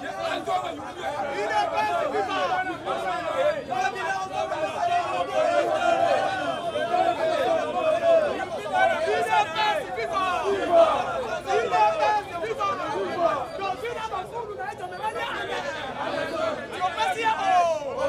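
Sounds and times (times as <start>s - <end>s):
men talking loudly: 0.0s - 18.0s.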